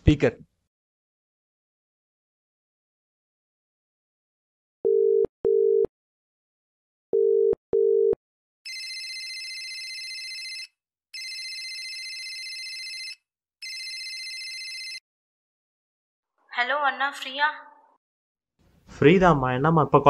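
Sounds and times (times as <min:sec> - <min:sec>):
telephone ringback tone: 0:04.9 - 0:05.9, 0:07.2 - 0:15.0
mobile phone electronic ringtone: 0:07.2 - 0:15.0.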